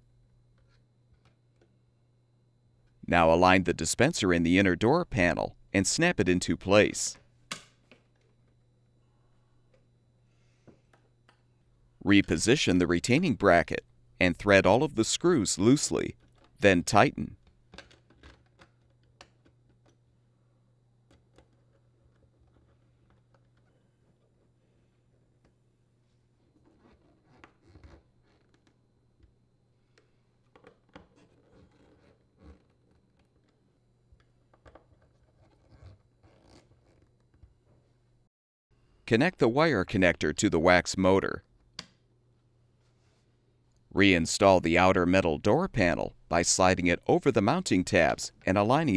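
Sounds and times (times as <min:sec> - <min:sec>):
low room hum: 0:00.0 - 0:48.9.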